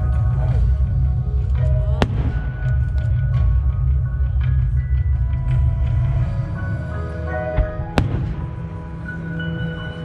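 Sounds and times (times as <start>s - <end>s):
steady low rumble: 0.0s - 9.5s
firework bang: 7.6s - 8.7s.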